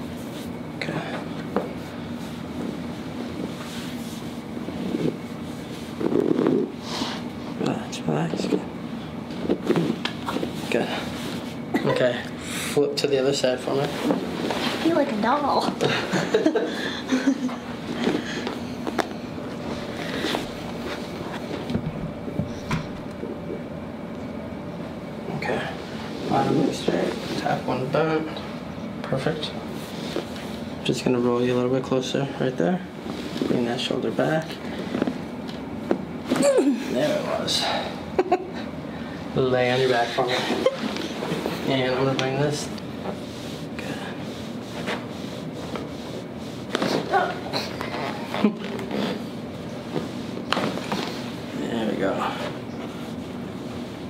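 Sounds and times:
rustling and rubbing on table: 0:00.0 - 0:00.6, 0:01.5 - 0:07.2, 0:09.3 - 0:11.7, 0:13.7 - 0:16.4, 0:17.3 - 0:22.6, 0:29.6 - 0:30.7, 0:33.0 - 0:36.4, 0:39.6 - 0:54.0.

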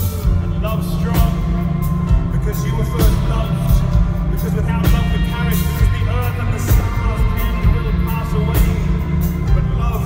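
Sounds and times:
booming bass: 0:00.0 - 0:10.0
live rock band playing: 0:00.0 - 0:10.0.

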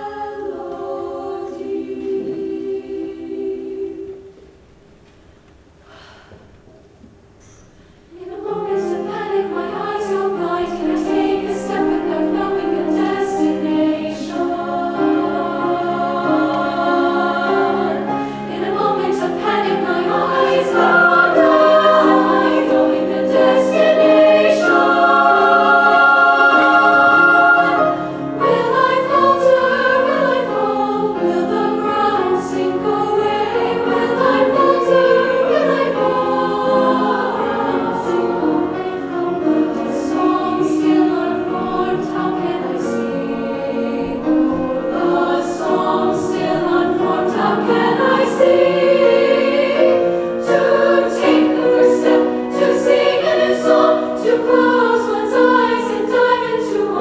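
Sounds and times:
youth choir singing: 0:00.0 - 0:04.6, 0:08.1 - 0:57.0
grand piano accompaniment: 0:06.4 - 0:57.0.

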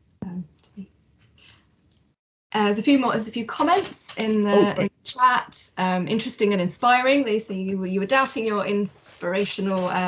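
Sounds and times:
person murmuring um: 0:04.5 - 0:04.9.

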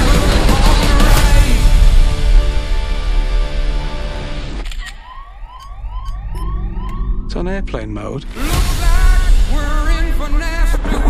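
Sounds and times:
loud music: 0:00.0 - 0:11.0.

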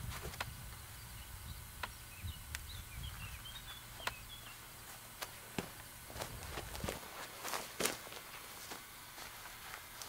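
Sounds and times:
footsteps on dirt and straw: 0:03.1 - 0:10.0
foot scuff: 0:04.9 - 0:10.0.

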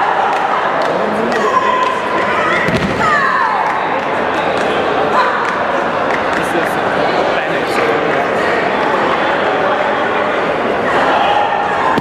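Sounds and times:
crowd voices talking and calling: 0:00.0 - 0:12.0.

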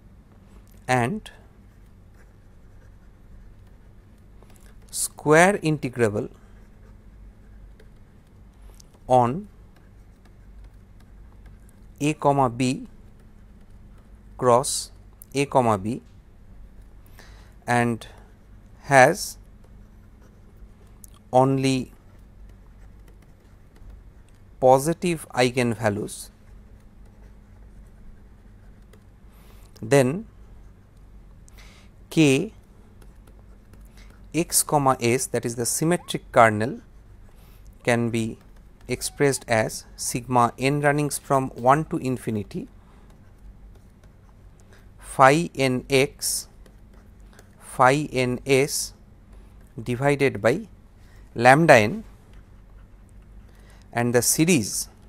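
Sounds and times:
low steady background hum: 0:00.0 - 0:55.0
stylus scratching on tablet screen: 0:01.2 - 0:15.6, 0:17.9 - 0:55.0.

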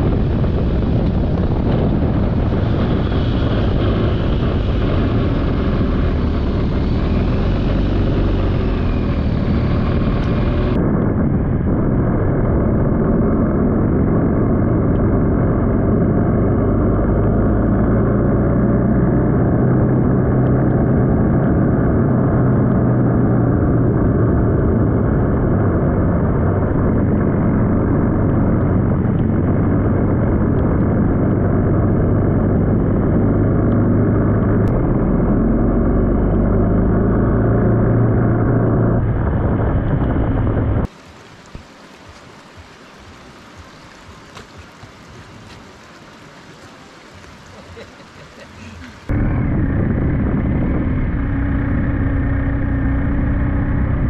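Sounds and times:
motorcycle engine running: 0:00.0 - 0:40.9, 0:49.0 - 0:54.0
wind rush on microphone: 0:00.0 - 0:54.0.

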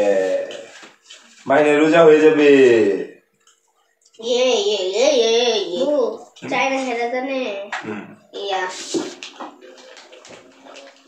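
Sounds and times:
food rustling on plates: 0:00.2 - 0:01.5, 0:08.7 - 0:11.0.

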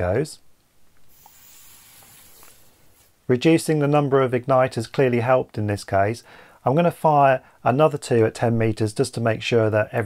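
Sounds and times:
fuse burning hiss: 0:00.8 - 0:03.6.

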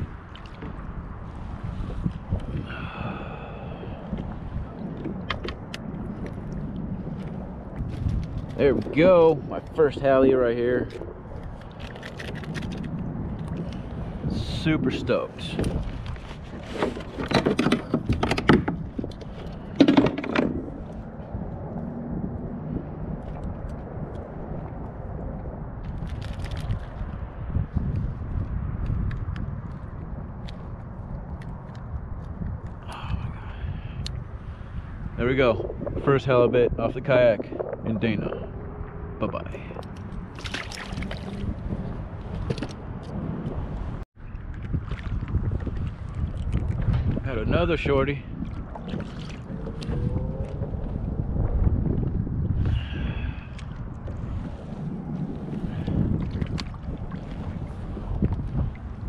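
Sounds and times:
wind buffeting microphone: 0:00.0 - 0:59.0
water splashy clicks: 0:05.0 - 0:08.9, 0:10.8 - 0:13.9, 0:25.8 - 0:27.1, 0:39.7 - 0:41.6, 0:55.8 - 0:57.5.

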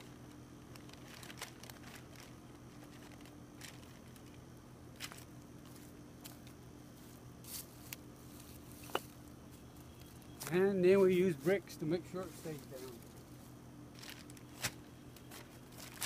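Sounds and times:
plastic sheet rustling and crackling: 0:00.0 - 0:09.0, 0:13.9 - 0:16.0
steady low hum: 0:00.0 - 0:16.0
footsteps on dry grass and leaves: 0:00.7 - 0:16.0.

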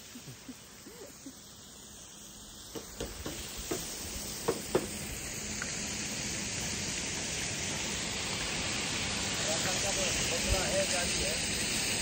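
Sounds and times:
steady rushing hiss: 0:00.0 - 0:12.0.

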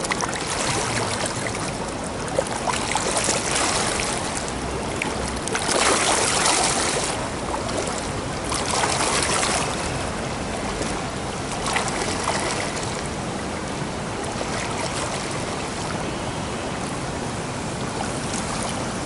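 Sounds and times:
water splashing from swimmer: 0:00.0 - 0:13.2.

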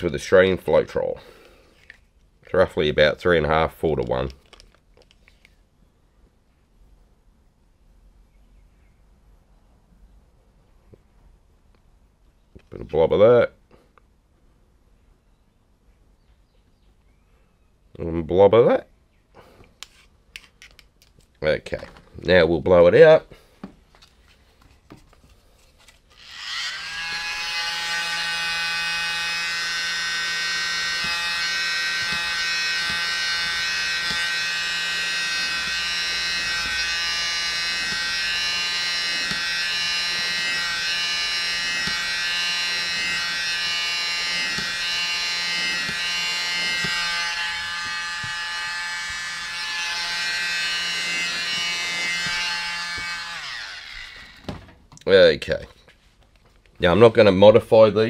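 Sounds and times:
electric blower whine: 0:26.2 - 0:54.8.

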